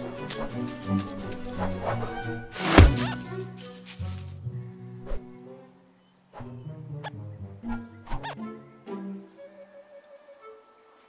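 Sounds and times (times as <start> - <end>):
cartoon film score music: 0.0 - 11.0.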